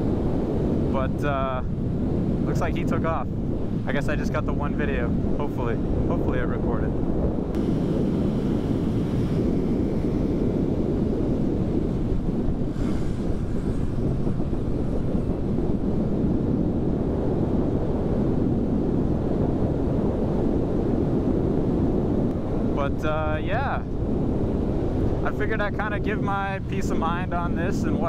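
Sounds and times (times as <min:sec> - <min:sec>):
wind buffeting helmet microphone: 0:00.0 - 0:28.0.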